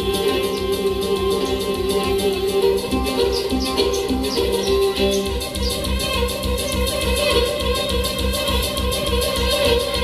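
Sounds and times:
folk music on plucked strings: 0:00.0 - 0:10.0.

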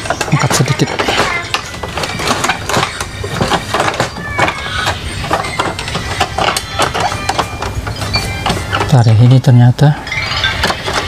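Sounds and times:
plastic casing clicking and rattling: 0:00.0 - 0:09.0.

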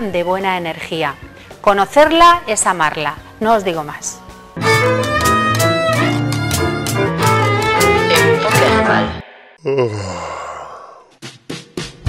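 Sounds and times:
theme music: 0:04.5 - 0:09.6.

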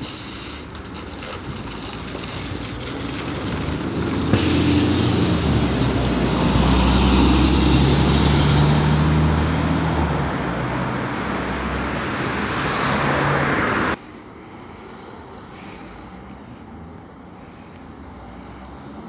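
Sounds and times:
bus engine hum: 0:00.0 - 0:19.0
road noise: 0:00.0 - 0:19.0
street traffic noise: 0:00.0 - 0:19.0.

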